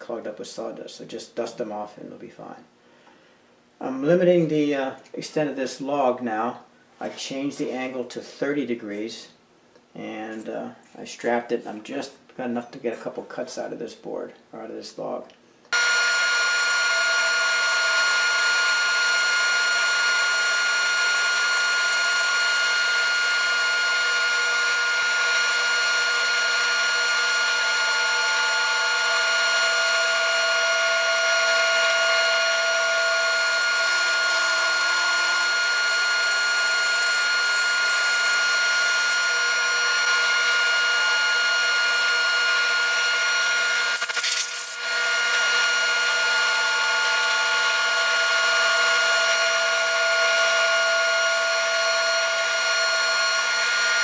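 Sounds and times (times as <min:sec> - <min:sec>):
band saw cutting log: 0:15.7 - 0:54.0.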